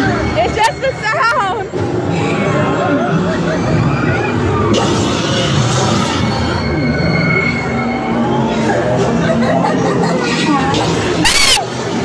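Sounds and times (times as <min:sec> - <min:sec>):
high steady squeal: 0:04.8 - 0:08.5.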